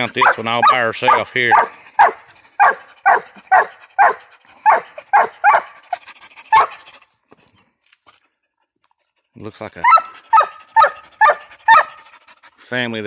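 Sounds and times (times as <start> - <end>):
dog barking: 0.1 - 5.8, 6.5 - 6.8, 9.8 - 12.1.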